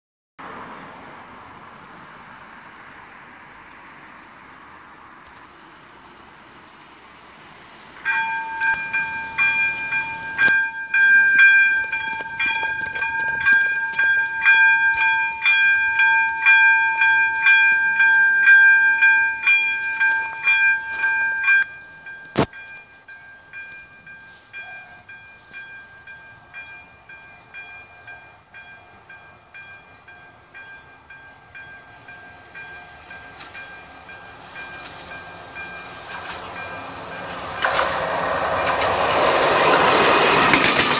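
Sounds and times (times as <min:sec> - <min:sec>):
approaching train: 0:00.4 - 0:40.9
level crossing bell ringing: 0:08.0 - 0:37.4.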